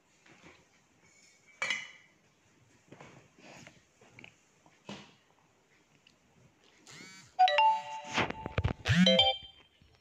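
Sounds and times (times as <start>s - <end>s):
electronic phone ringtone: 7.0s - 9.6s.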